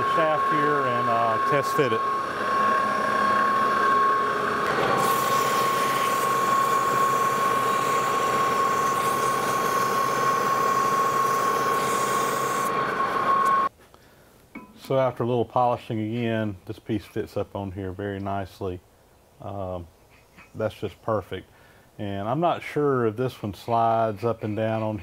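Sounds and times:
metal lathe whining: 0:00.0 - 0:13.7.

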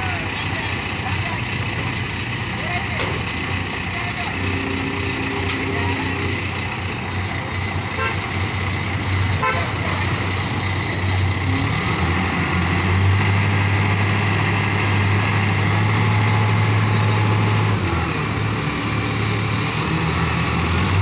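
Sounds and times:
forklift diesel engine running: 0:00.0 - 0:21.0.

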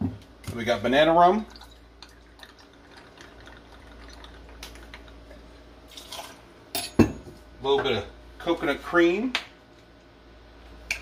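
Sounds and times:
liquid trickling into shaker: 0:01.4 - 0:06.4.

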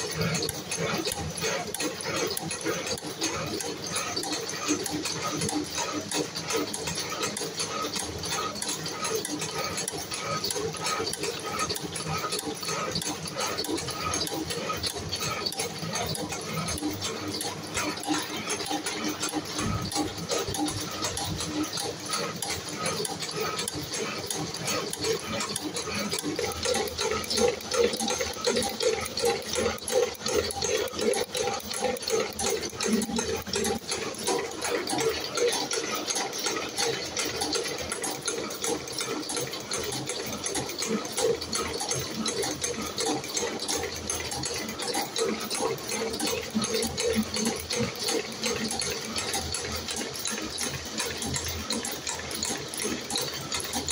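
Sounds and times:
spring-coiling machine clattering: 0:00.0 - 0:53.9.

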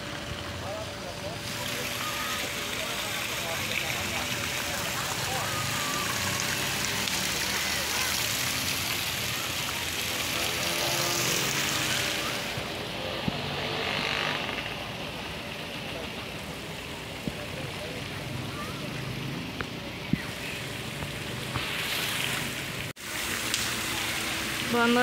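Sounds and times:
faint distant voices: 0:00.0 - 0:25.0
fountain water splashing: 0:00.0 - 0:25.0.

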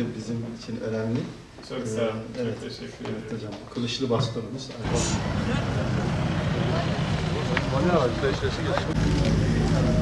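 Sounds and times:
crowd rumble with voices: 0:04.8 - 0:10.0.

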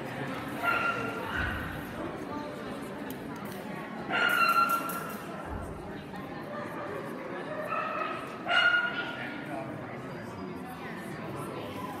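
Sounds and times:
faint voices: 0:00.0 - 0:12.0
dog barking: 0:07.7 - 0:09.2.

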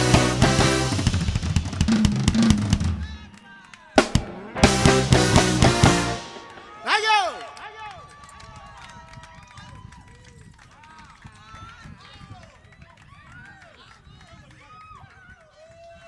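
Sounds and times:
audience applauding: 0:02.4 - 0:16.0
audience cheering and whooping: 0:06.3 - 0:10.5.

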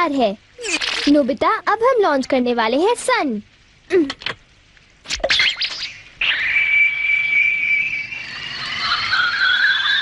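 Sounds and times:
rising electronic tone: 0:05.3 - 0:10.0
whistling electronic tone: 0:05.3 - 0:10.0.

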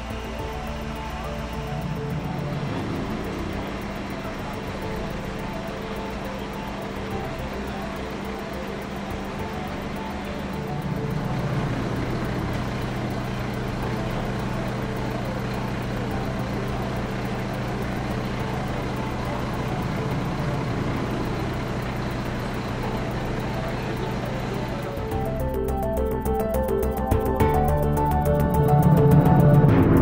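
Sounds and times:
diesel engine droning: 0:00.0 - 0:30.0.

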